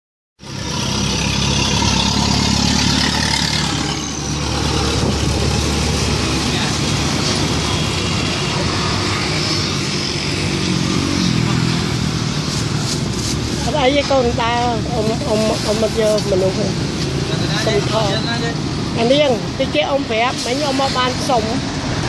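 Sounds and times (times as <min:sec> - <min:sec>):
street noise: 0:00.4 - 0:22.0
vehicle engine humming: 0:00.4 - 0:22.0.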